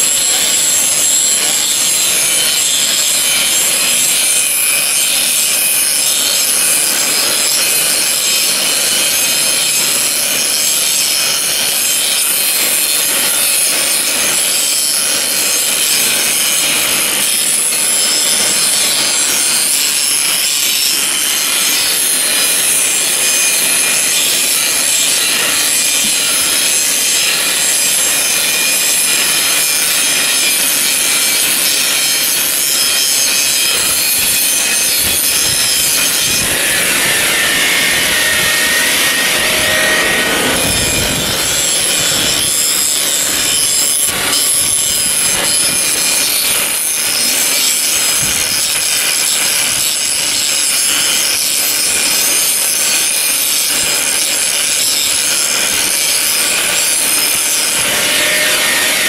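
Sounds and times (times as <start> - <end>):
wire brush grinder rasping on metal: 0.0 - 59.0.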